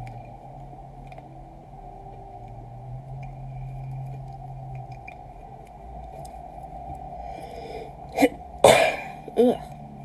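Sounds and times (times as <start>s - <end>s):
person sneezing: 8.2s - 9.7s.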